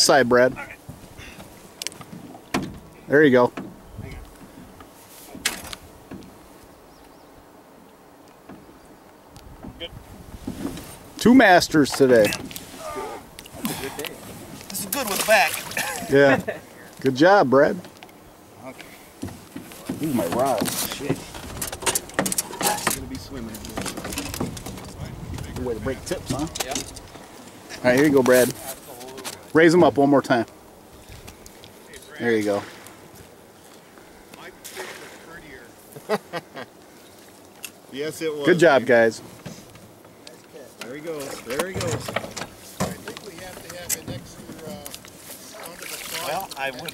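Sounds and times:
low steady background hiss: 0.0s - 46.9s.

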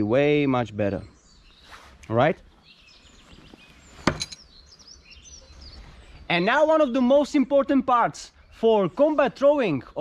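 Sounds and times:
birds chirping faintly: 0.0s - 10.0s.

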